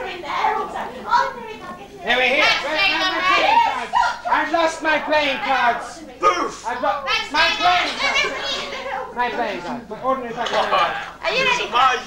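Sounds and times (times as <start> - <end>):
excited voices shouting: 2.3 - 9.2.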